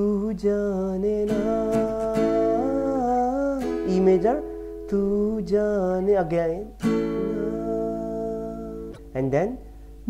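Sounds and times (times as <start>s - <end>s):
acoustic guitar strumming: 0.0s - 10.0s
man singing held note: 1.2s - 9.6s.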